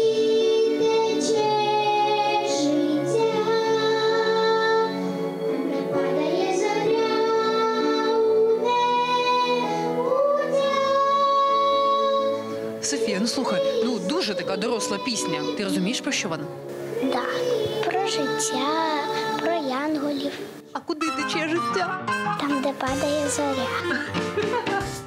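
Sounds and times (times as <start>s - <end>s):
girl and woman singing together: 0.0s - 16.0s, 17.0s - 20.4s.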